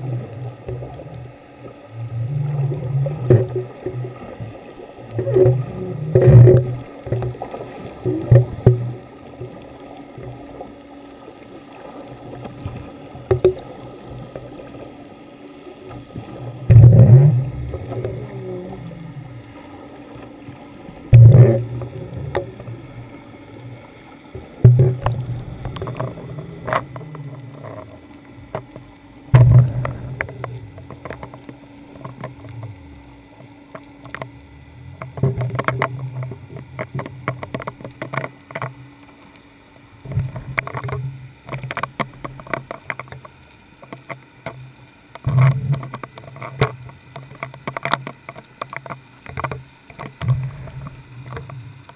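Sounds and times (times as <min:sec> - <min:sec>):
faint underwater rumble: 0:00.0 - 0:51.9
low steady hum: 0:00.0 - 0:51.9.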